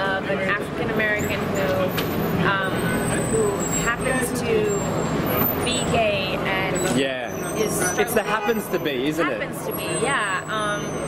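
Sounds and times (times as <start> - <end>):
woman talking: 0.0 - 4.9, 5.6 - 6.9, 7.6 - 8.2, 9.2 - 11.0
traffic rumble: 0.0 - 11.0.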